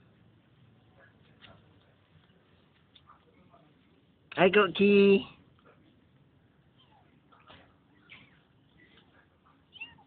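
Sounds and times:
kittens mewing: 0:09.6 - 0:10.0.

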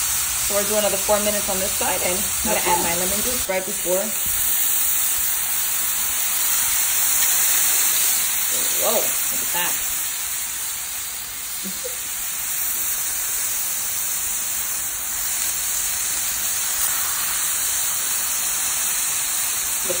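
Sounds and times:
steak sizzling in grill pan: 0:00.0 - 0:20.0.

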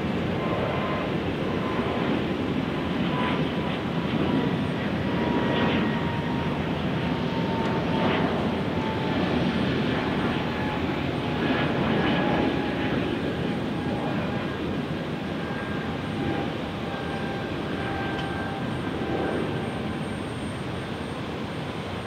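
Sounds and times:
jet engine rumble and whine: 0:00.0 - 0:22.0.

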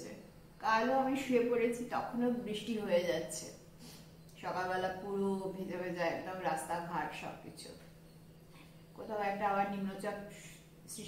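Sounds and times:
woman talking: 0:00.0 - 0:03.6, 0:04.4 - 0:07.8, 0:09.0 - 0:11.0.

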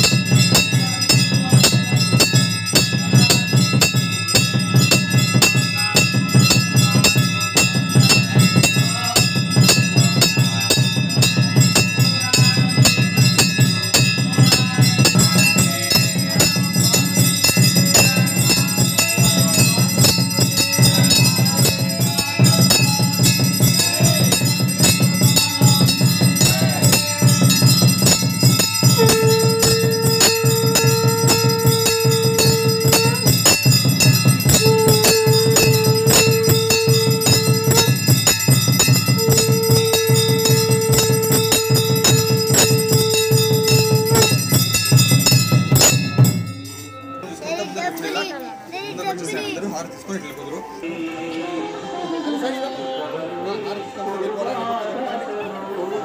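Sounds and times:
fast steady drumbeat: 0:00.0 - 0:47.0
bells ringing: 0:00.0 - 0:54.4
long held note: 0:17.9 - 0:45.4.

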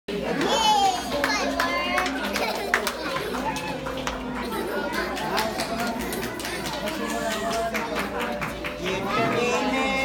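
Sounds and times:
young children chattering: 0:00.1 - 0:10.0.

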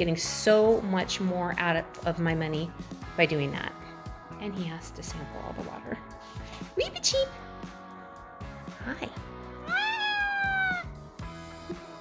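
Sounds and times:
background music: 0:00.0 - 0:12.0
cat meowing: 0:09.6 - 0:11.0.

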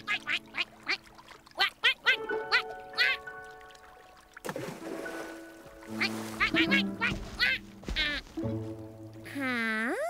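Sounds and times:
cartoon duck quacking: 0:00.0 - 0:01.0, 0:01.6 - 0:03.3, 0:06.0 - 0:08.3
background music: 0:00.0 - 0:10.0.

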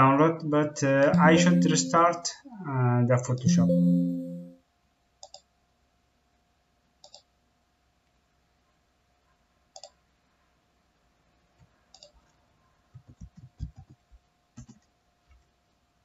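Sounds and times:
computer mouse clicks: 0:05.2 - 0:05.5, 0:07.0 - 0:07.3, 0:09.7 - 0:10.0, 0:11.6 - 0:12.4, 0:14.6 - 0:15.4.

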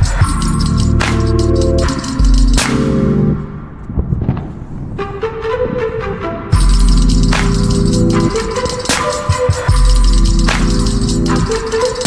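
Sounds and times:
bass-heavy beat: 0:00.0 - 0:03.4, 0:06.6 - 0:12.0
held melody line: 0:05.0 - 0:12.0.

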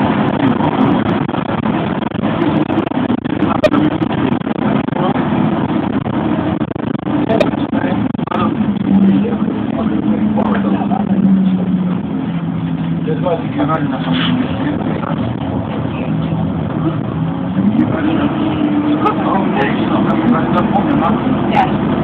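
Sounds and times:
bus engine running: 0:00.0 - 0:22.0.

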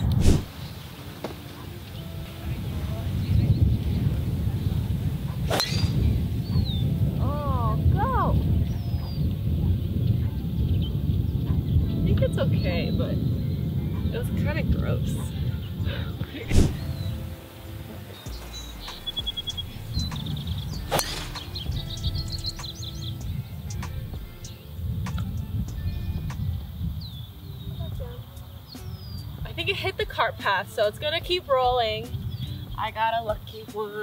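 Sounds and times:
golf club hitting ball: 0:05.4 - 0:06.2, 0:20.1 - 0:22.0.

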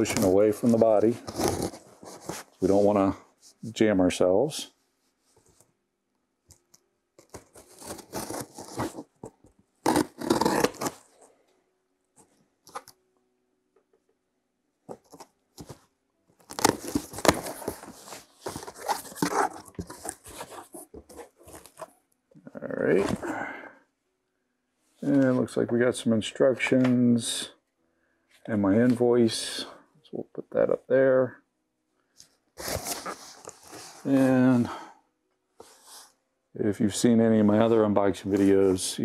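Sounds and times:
tape and cardboard tearing: 0:01.3 - 0:02.4, 0:07.2 - 0:11.1, 0:16.4 - 0:21.8
knife slitting packing tape: 0:09.8 - 0:11.0.

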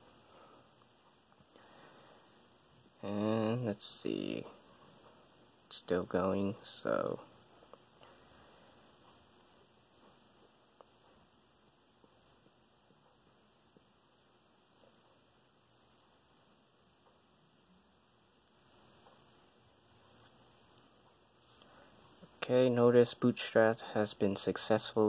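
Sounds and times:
faint steady hiss: 0:00.0 - 0:25.0.

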